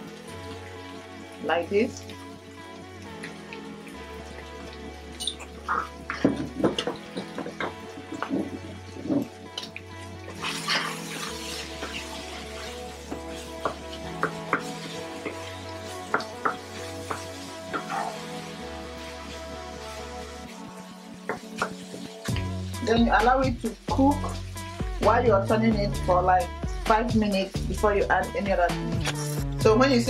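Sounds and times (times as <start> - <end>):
background music with bass line: 0.0 - 30.0
wooden spoon stirring meat in pan: 4.4 - 23.2.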